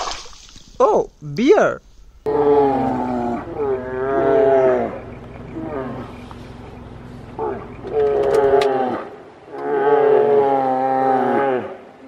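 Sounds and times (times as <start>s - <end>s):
animal mooing: 2.3s - 12.0s.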